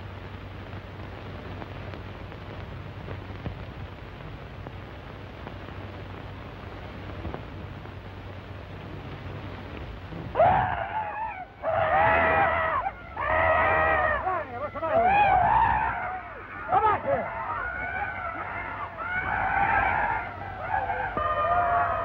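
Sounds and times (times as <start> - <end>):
film soundtrack hum: 0.0 - 22.0
high-pitched wavering cries: 10.4 - 22.0.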